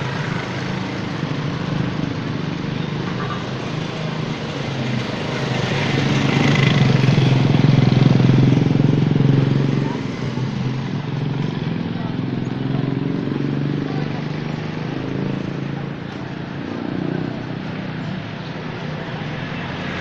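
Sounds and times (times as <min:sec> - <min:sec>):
motorcycle engine running: 0:00.0 - 0:19.6.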